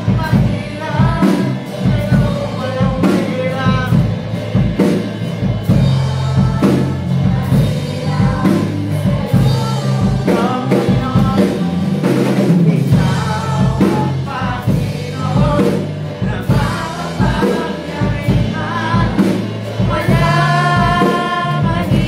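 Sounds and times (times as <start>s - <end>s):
electric guitars playing: 0.0s - 22.0s
many voices singing: 0.0s - 22.0s
steady beat: 0.0s - 22.0s.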